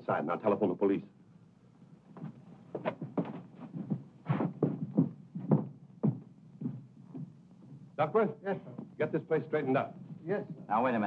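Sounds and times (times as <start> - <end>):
steady low hum: 0.0 - 11.0
footsteps on hard floor: 2.2 - 7.8.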